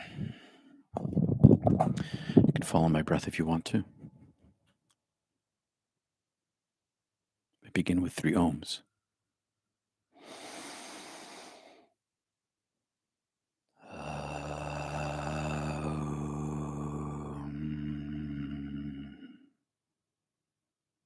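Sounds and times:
man breathing in: 0:00.0 - 0:00.9, 0:02.0 - 0:02.5, 0:10.2 - 0:11.9
man chanting om: 0:13.9 - 0:19.3.

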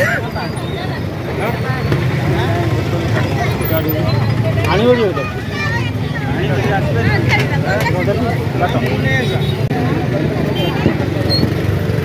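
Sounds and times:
people talking: 0:00.0 - 0:11.8
outdoor crowd rumble: 0:00.0 - 0:12.0.

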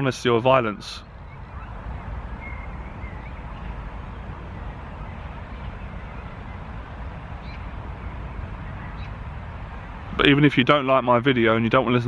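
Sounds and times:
faint high bird call: 0:00.6 - 0:03.8.

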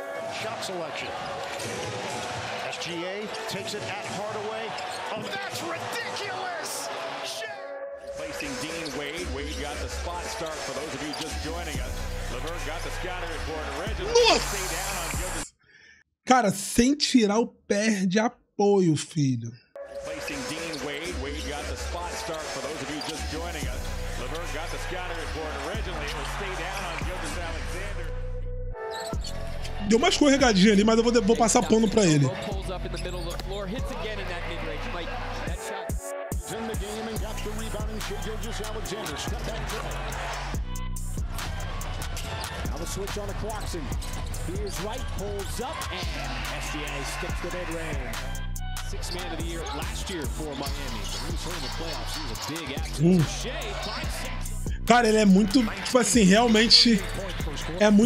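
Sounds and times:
background music with bass: 0:11.4 - 0:15.4, 0:23.2 - 0:35.6, 0:36.3 - 0:58.0
crowd noise: 0:12.4 - 0:15.4, 0:20.7 - 0:27.9, 0:33.9 - 0:35.6, 0:37.3 - 0:40.6, 0:48.9 - 0:58.0
person talking: 0:14.0 - 0:14.6, 0:16.3 - 0:19.6, 0:29.9 - 0:32.4, 0:53.0 - 0:53.4, 0:54.8 - 0:57.0.

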